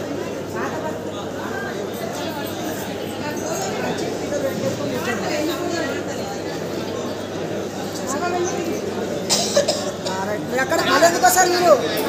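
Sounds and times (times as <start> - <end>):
people talking in a hall: 0.0 - 12.0
short sharp cough: 9.3 - 10.2.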